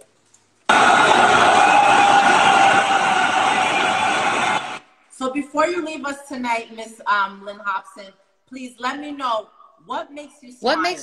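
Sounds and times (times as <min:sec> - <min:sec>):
crowd cheering: 0:00.7 - 0:05.0.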